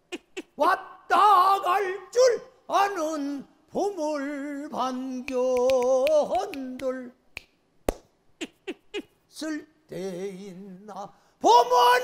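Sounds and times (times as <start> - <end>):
person singing: 0.2 - 7.2, 8.7 - 12.0
hand claps: 5.2 - 8.1.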